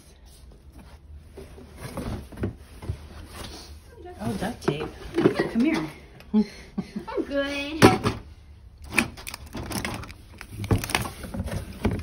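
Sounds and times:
rustling fabric and box contents: 0.0s - 5.9s, 8.8s - 12.0s.

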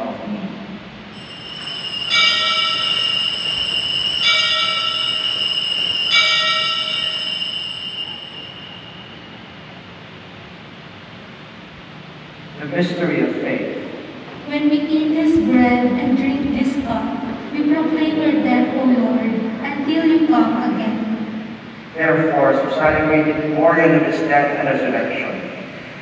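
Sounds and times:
altar bell ringing: 1.1s - 10.0s.

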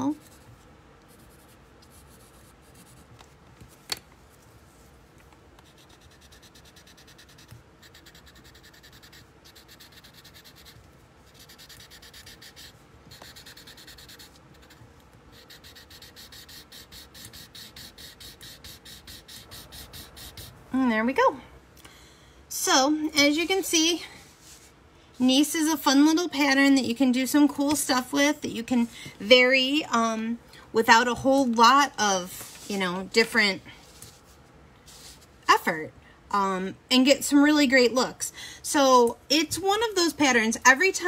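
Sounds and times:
pencil scratching on paper: 1.1s - 3.1s, 5.6s - 20.6s.

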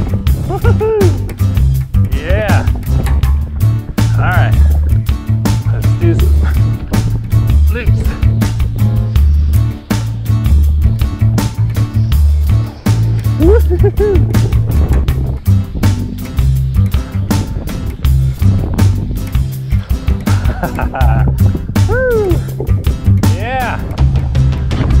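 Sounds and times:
electronic music with heavy bass: 0.0s - 25.0s.

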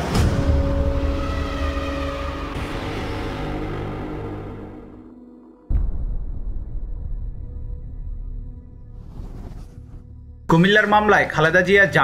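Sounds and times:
deep rumble: 4.8s - 10.5s.

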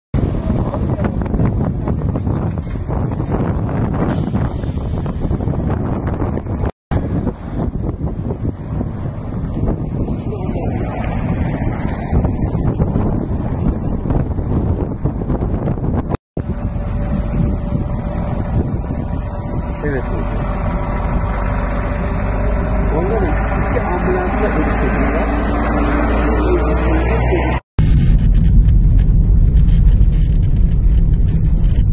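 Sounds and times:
vehicle engine noise: 0.2s - 31.9s
wind rumbling on microphone: 0.2s - 31.9s.

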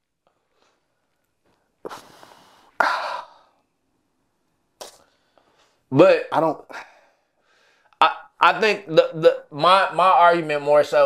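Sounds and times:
man sighing: 1.9s - 3.6s.

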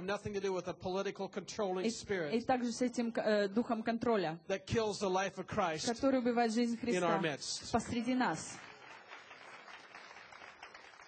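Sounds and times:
scattered applause: 8.3s - 11.0s.

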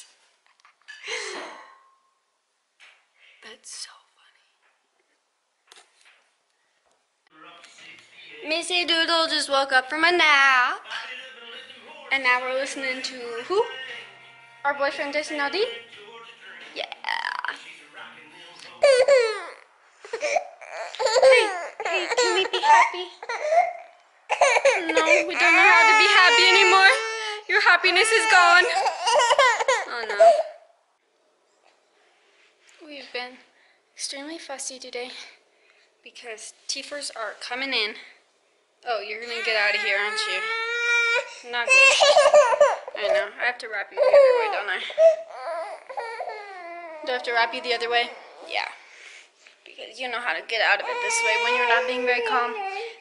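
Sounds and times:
baby vocalizing: 18.8s - 27.4s, 44.0s - 48.5s.

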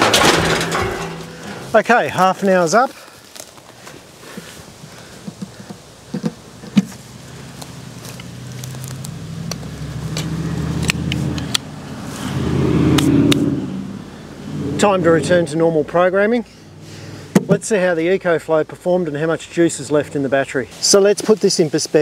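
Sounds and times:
hands handling plastic box: 0.0s - 7.0s
passing motor vehicle engine drone: 7.8s - 15.8s.

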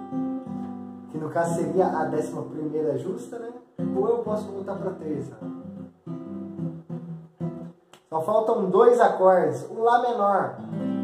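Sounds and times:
acoustic guitar chords: 0.0s - 8.1s, 10.4s - 11.0s.

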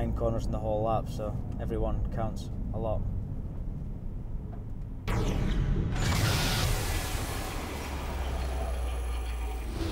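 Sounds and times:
low drone: 5.1s - 9.9s.

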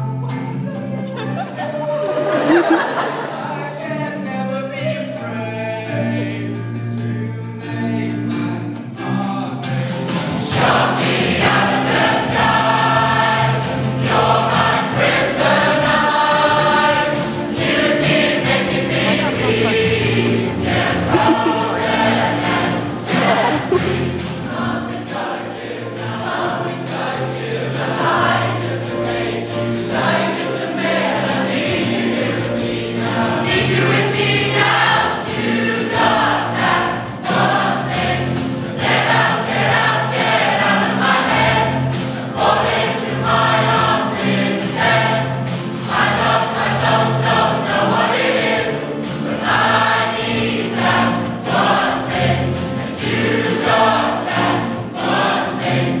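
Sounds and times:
choir singing a pop song: 0.0s - 56.0s.

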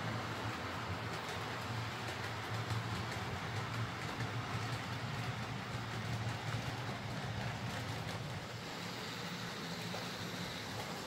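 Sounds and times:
model train wheels rolling on rails: 0.0s - 11.0s
model train motor hum: 8.1s - 11.0s.

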